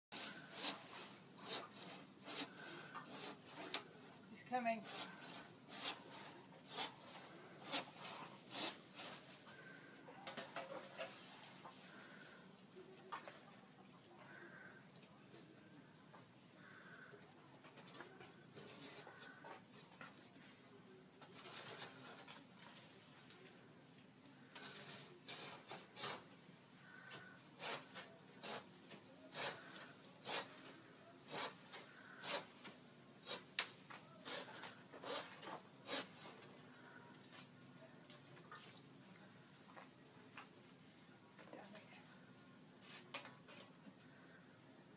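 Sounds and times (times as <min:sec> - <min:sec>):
hand saw rasping through wood: 0:00.1 - 0:03.8, 0:04.8 - 0:09.1, 0:24.8 - 0:26.2, 0:27.6 - 0:28.7, 0:29.3 - 0:30.6, 0:31.2 - 0:32.5, 0:33.2 - 0:33.5, 0:34.2 - 0:36.3.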